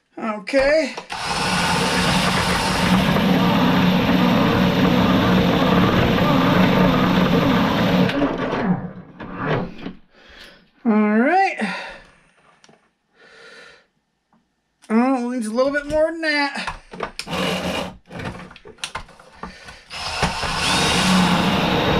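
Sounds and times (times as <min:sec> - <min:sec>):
grinding wheel grinding metal: 0:01.1 - 0:08.9, 0:19.9 - 0:21.9
motor hum: 0:01.1 - 0:09.0, 0:19.9 - 0:21.9.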